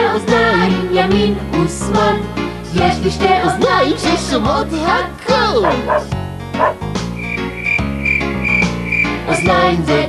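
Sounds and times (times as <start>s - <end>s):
backing music: 0.0s - 10.0s
frog croak sound effect: 5.6s - 9.5s.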